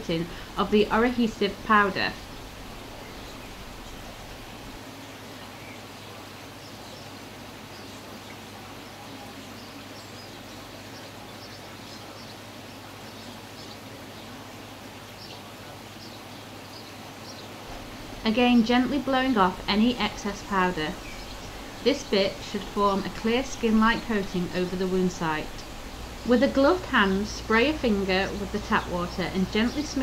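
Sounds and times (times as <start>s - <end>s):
ambient hiss: 0.0s - 30.0s.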